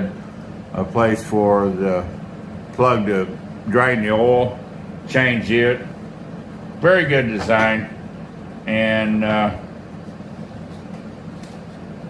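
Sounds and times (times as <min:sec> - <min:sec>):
workshop hum and whir: 0:00.0 - 0:12.0.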